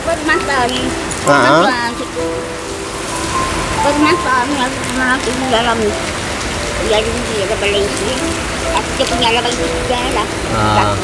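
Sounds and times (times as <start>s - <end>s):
person speaking: 0.0s - 2.4s, 3.8s - 11.0s
steady background hiss: 0.0s - 11.0s.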